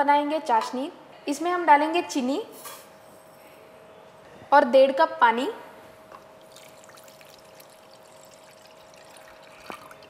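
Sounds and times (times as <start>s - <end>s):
water trickling into pot: 6.2s - 10.0s.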